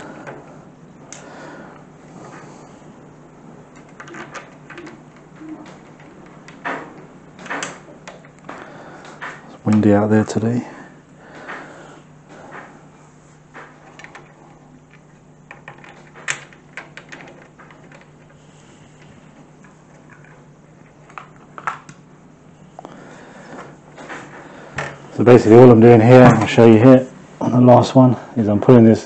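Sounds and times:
faint low hum: 0.0 - 29.0.

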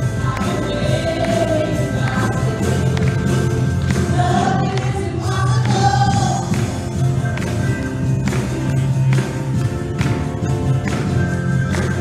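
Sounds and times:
band with guitar bass and drums: 0.0 - 12.0
women singing together: 0.1 - 6.7.

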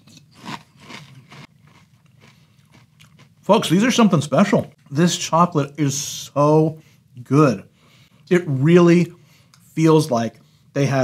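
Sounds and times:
person chewing crunchy cereal: 0.0 - 3.5.

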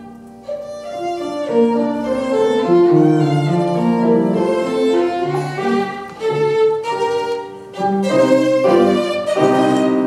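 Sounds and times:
piano chords: 0.0 - 10.0
violin bowed notes: 0.0 - 10.0.

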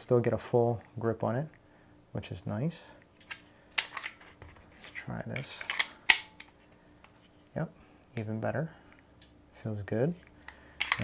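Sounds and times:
pistol magazine clicking into place: 5.4 - 6.5.

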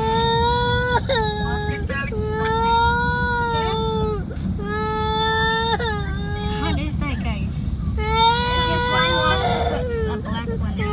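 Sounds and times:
moving car rumble: 0.0 - 10.9
young child crying: 8.0 - 10.9.

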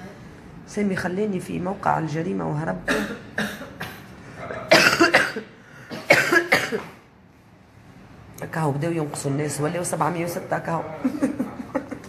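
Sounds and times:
woman coughing: 2.9 - 4.1, 4.7 - 7.0.

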